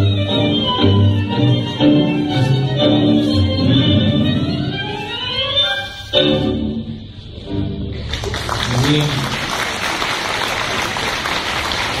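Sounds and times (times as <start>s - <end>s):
audience applauding: 8.0s - 12.0s.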